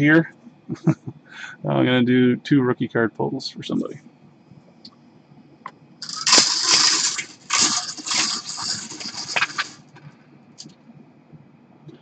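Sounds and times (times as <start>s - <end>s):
balls rattling in bingo cage: 6.0s - 9.8s.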